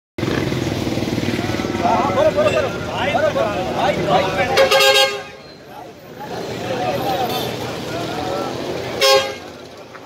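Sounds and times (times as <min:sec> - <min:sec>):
crowd voices: 0:00.3 - 0:10.0.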